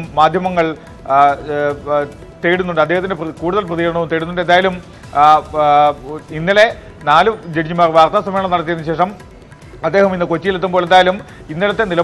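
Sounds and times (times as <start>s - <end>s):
man speaking: 0.0s - 9.2s, 9.8s - 12.0s.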